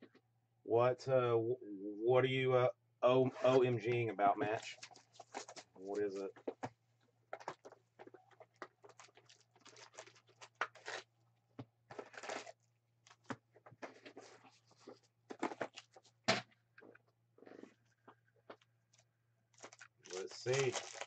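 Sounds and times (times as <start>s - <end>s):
cardboard and foil rustling: 4.6s - 6.0s, 8.5s - 11.1s, 11.9s - 16.2s, 19.6s - 21.0s.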